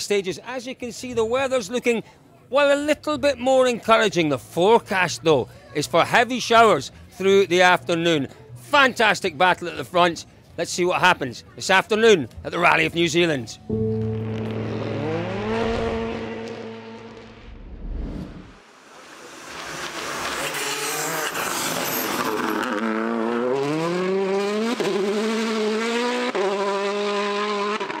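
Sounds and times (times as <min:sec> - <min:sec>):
rally car engine accelerating: 0:13.7 - 0:28.0.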